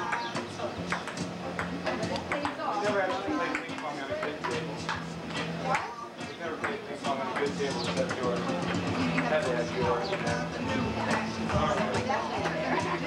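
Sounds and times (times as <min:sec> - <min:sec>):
table tennis ball knocking: 0:00.0 - 0:02.6, 0:06.6 - 0:08.3
background music: 0:00.0 - 0:13.0
people talking: 0:00.0 - 0:13.0.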